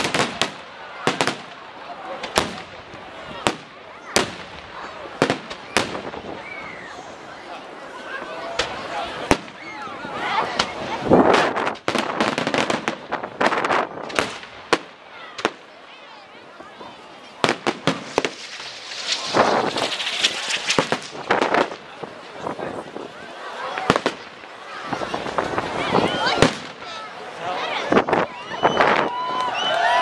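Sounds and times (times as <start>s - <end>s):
fireworks bursting with bangs and crackles: 0.0s - 7.2s, 8.6s - 9.7s, 10.4s - 15.9s, 17.2s - 27.3s.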